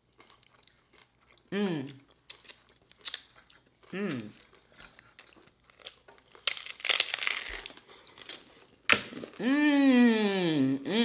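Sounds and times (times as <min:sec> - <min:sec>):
taco crunching being chewed: 0:00.0 - 0:09.4.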